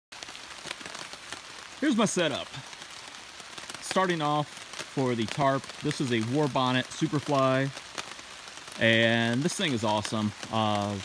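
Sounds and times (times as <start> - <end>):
rain on a tarp: 0.1 - 11.0.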